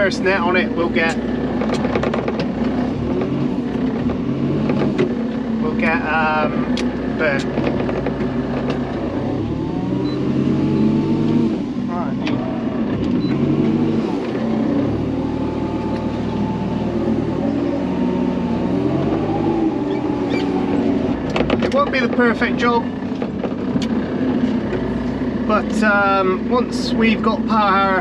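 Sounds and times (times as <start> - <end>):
diesel engine revving: 0.0 - 28.0.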